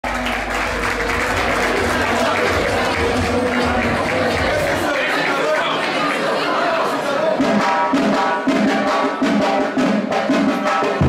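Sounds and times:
music playing: 0.0s - 5.2s
crowd clapping: 0.0s - 7.8s.

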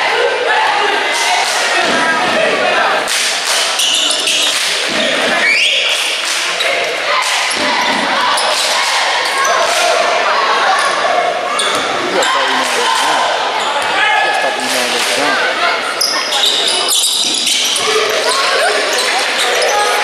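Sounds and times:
echoing voices: 0.0s - 20.0s.

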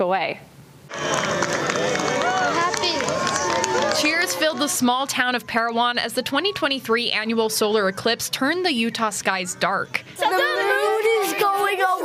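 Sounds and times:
crowd cheering and shouting: 0.9s - 9.6s, 10.2s - 12.0s.

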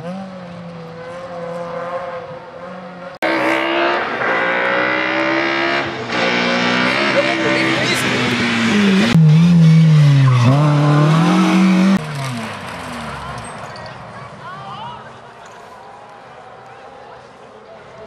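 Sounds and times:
rally car engines revving: 0.0s - 14.4s.

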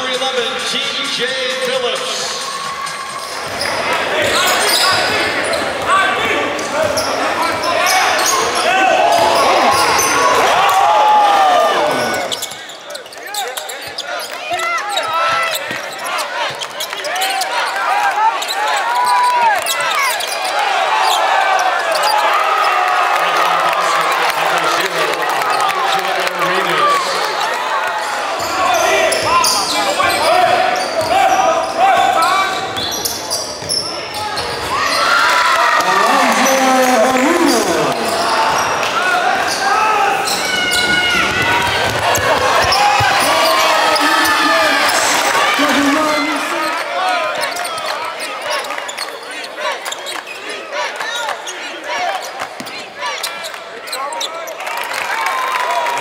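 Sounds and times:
people talking and calling out: 23.6s - 54.8s.

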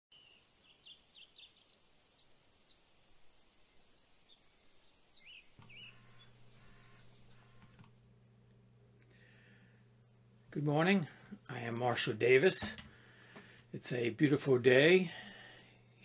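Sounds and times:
birds chirping: 0.1s - 7.9s
low steady hum: 0.5s - 16.0s.

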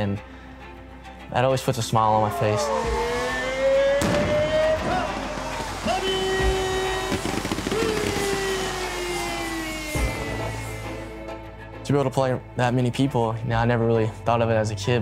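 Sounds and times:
stadium music: 1.4s - 13.6s
crowd noise: 2.3s - 6.0s
sharp bangs: 3.1s - 11.0s.

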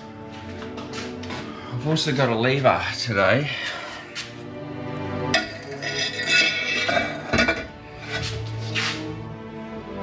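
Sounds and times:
background music: 0.0s - 10.0s
metal pipe clinking and scraping: 5.3s - 8.9s.

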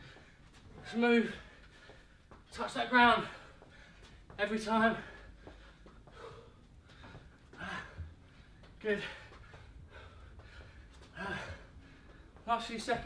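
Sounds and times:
man breathing hard: 0.0s - 2.4s, 3.2s - 12.4s.

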